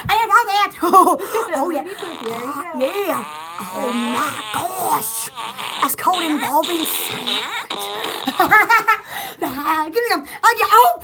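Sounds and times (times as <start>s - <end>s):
woman speaking: 0.0s - 7.7s, 9.4s - 11.0s.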